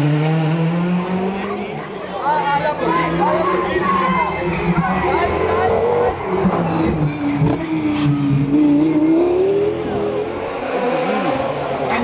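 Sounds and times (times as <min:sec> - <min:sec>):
rally car engine: 0:00.0 - 0:12.0.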